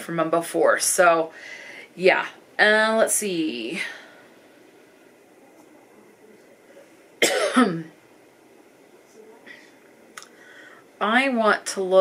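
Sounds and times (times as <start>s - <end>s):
woman coughing: 7.2s - 8.0s.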